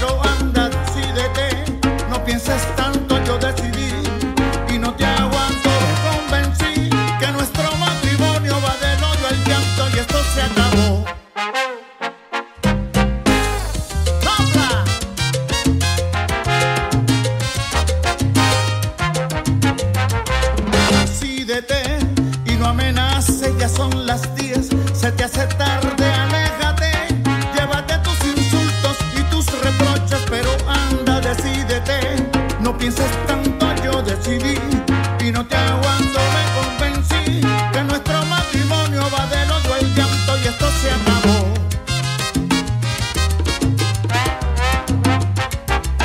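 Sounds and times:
salsa music playing loudly: 0.0 - 46.0.

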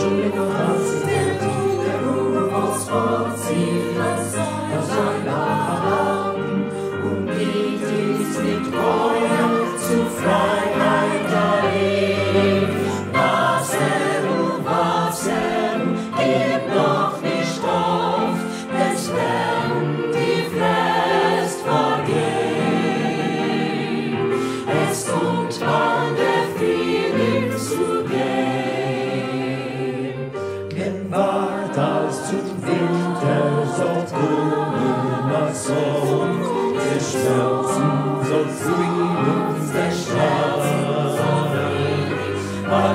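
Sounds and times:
mixed choir singing: 0.0 - 42.9
piano accompaniment: 0.0 - 42.9.

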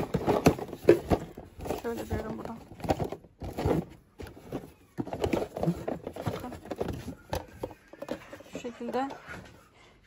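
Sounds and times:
plastic knocking and clattering: 0.0 - 9.6.

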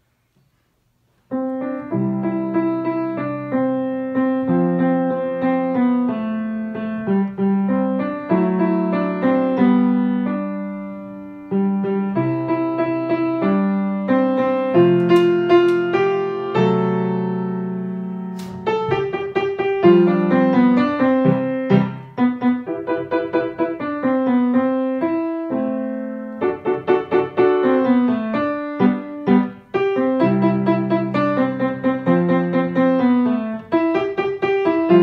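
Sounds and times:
soft slow piano: 0.0 - 35.0.

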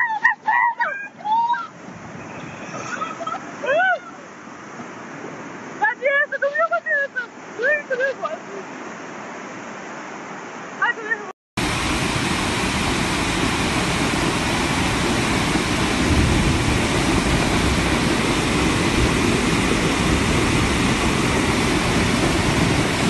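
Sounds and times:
floodwater rushing: 0.0 - 23.0.

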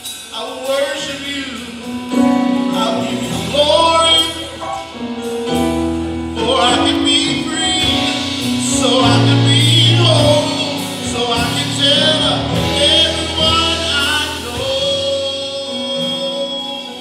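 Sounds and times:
gospel singing with vibrato: 0.0 - 17.0
low keyboard notes: 0.0 - 17.0.

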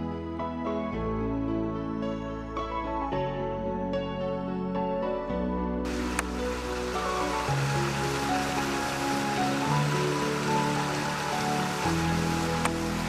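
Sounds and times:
soft background music: 0.0 - 13.0
water rushing over rocks: 5.9 - 13.0.

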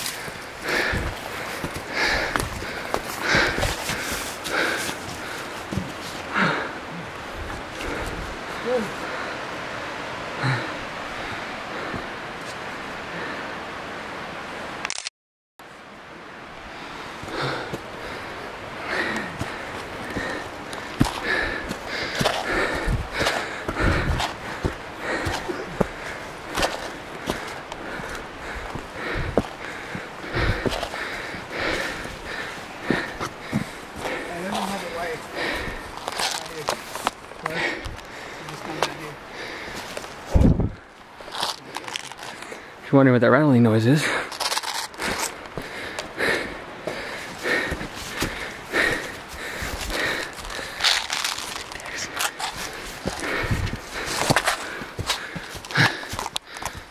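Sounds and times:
running footsteps on rocks and leaves: 0.0 - 9.4, 17.1 - 42.7, 44.0 - 56.9
hard breathing: 0.0 - 12.4, 16.7 - 42.8, 43.9 - 56.9.

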